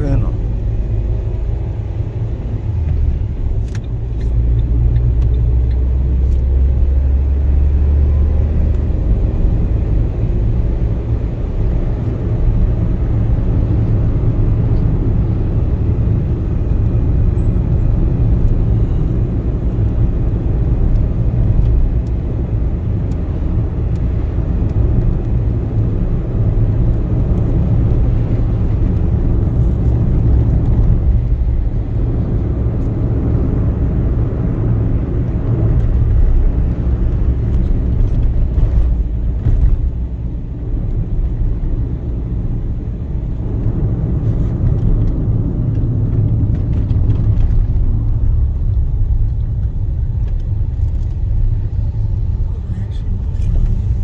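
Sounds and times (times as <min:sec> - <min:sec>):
car cabin road rumble: 0:00.0 - 0:54.0.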